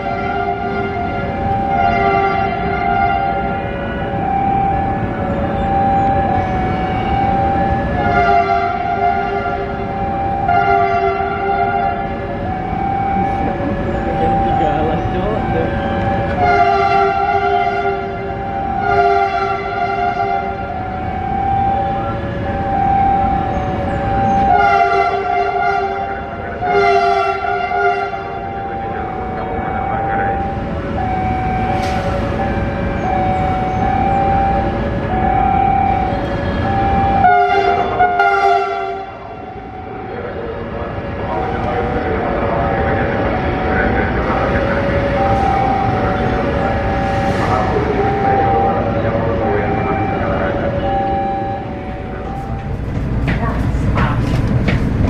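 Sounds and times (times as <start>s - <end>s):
locomotive horn blasts: 0.0s - 52.7s
low engine rumble: 28.5s - 37.2s, 39.2s - 55.0s.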